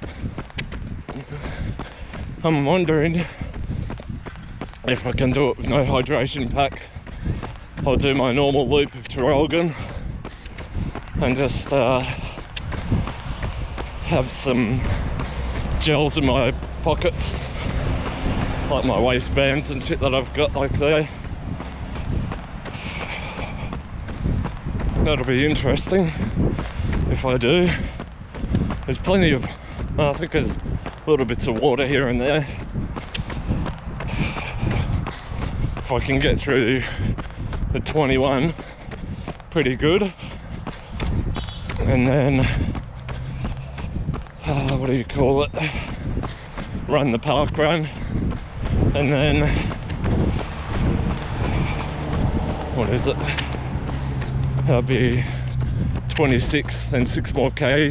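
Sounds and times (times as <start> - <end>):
faint footfalls on path: 0.0 - 57.9
wind buffeting microphone: 0.0 - 57.9.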